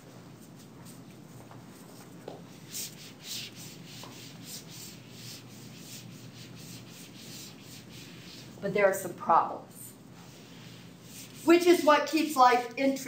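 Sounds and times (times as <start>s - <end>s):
rubbing strokes on board: 2.6s - 8.6s, 10.2s - 12.0s.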